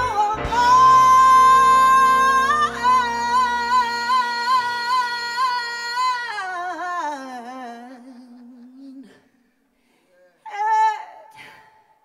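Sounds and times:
woman singing a low note: 0:00.0 - 0:05.7.

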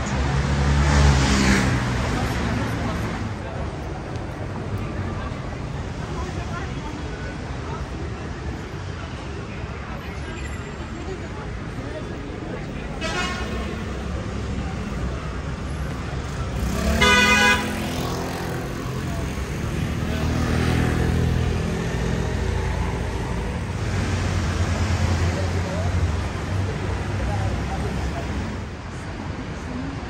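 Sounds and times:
low traffic rumble: 0:00.0 - 0:30.0
vehicle horn honking: 0:13.0 - 0:13.7, 0:16.8 - 0:17.8.

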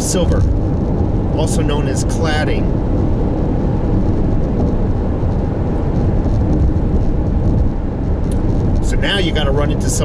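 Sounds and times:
car interior driving noise: 0:00.0 - 0:10.0.

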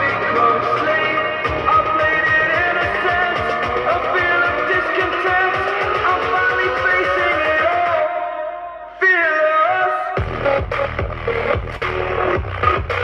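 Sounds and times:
electronic music through woofers: 0:00.0 - 0:08.1, 0:10.2 - 0:13.0.

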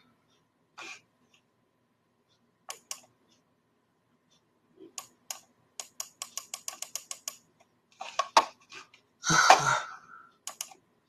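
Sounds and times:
typing on computer keyboard: 0:05.0 - 0:07.5, 0:10.4 - 0:10.8.

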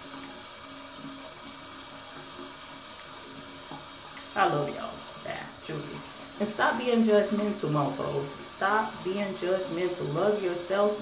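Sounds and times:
running water from tap: 0:00.0 - 0:11.0.

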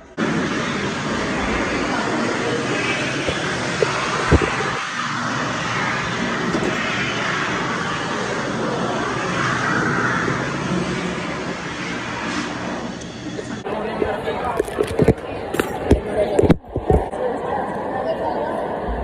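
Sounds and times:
electric hand dryer running: 0:00.2 - 0:08.4.

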